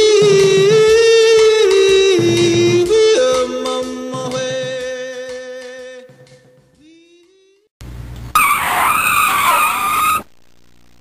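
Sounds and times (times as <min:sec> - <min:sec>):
tyres screeching: 0:08.3 - 0:10.3.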